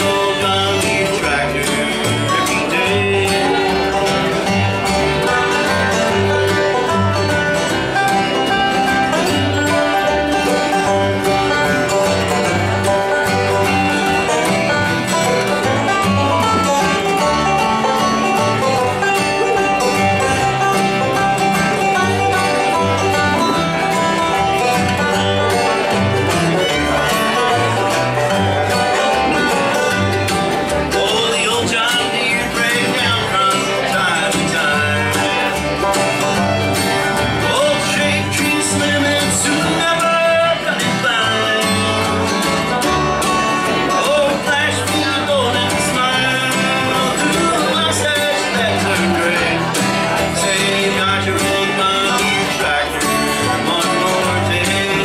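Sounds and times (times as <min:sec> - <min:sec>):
acoustic guitar: 0:00.0 - 0:55.0
banjo: 0:00.0 - 0:55.0
fiddle: 0:00.0 - 0:55.0
mandolin: 0:00.0 - 0:55.0
upright bass: 0:00.0 - 0:55.0.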